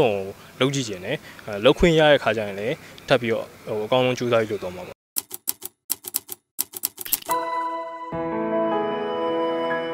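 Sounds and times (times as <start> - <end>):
typewriter key clicks: 5.2 - 7.3.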